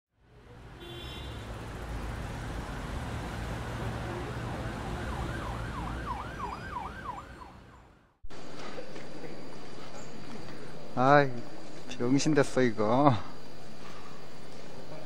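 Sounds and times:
traffic rumble: 0.2s - 8.3s
emergency vehicle siren wailing: 1.8s - 8.2s.

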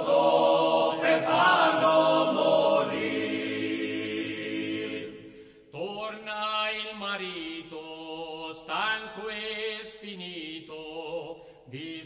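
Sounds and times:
held choral chord: 0.0s - 5.4s
man singing: 5.7s - 12.0s.

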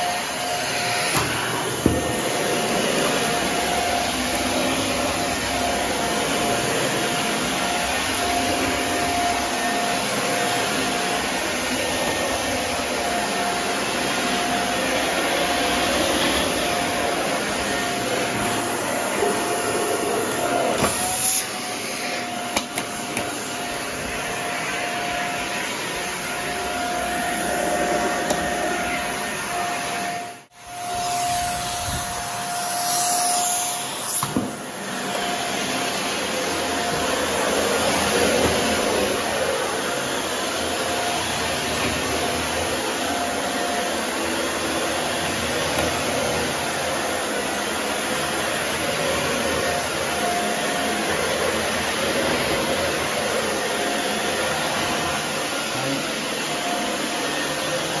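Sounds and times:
vacuum cleaner running on carpet: 0.0s - 58.0s.

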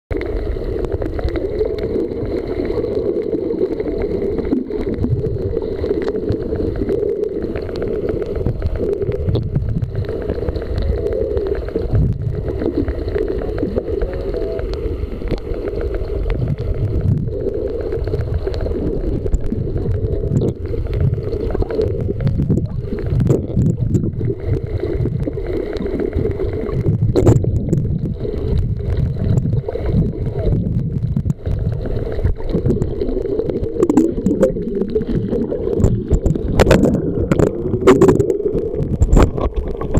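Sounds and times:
bubbling from swimmers: 0.1s - 39.9s
muffled underwater rumble: 0.1s - 39.9s.

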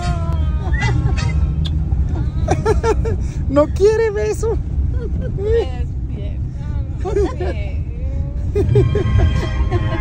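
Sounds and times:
engine and road rumble: 0.0s - 10.0s
man laughing: 2.1s - 3.4s, 7.0s - 7.6s, 8.5s - 10.0s.

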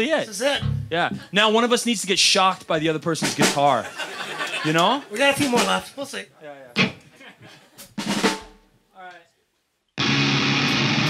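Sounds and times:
drum kit hit: 0.6s - 1.2s, 3.2s - 3.7s, 6.8s - 7.0s, 8.0s - 8.6s.

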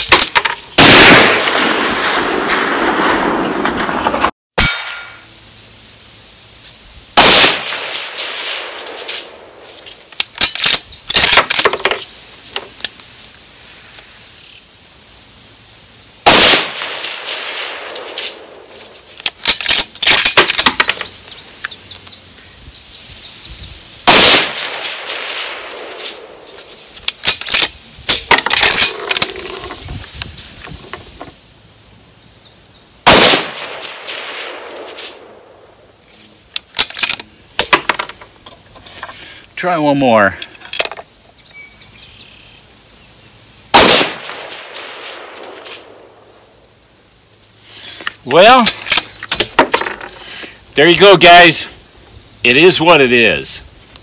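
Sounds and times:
rifle shots with echo: 0.8s - 5.2s, 7.2s - 9.6s, 16.2s - 18.6s, 24.1s - 26.4s, 33.0s - 35.6s, 43.7s - 46.3s.

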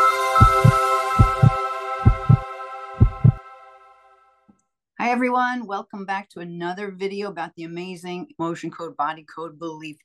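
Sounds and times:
low heartbeat-like double thump: 0.4s - 2.4s, 3.0s - 3.4s.

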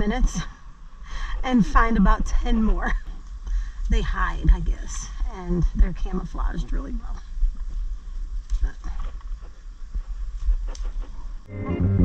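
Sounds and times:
music: 11.5s - 12.0s.

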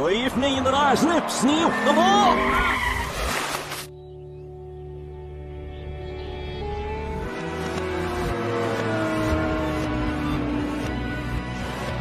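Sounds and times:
reversed tyre skidding: 0.0s - 3.8s
soft music: 3.9s - 12.0s.

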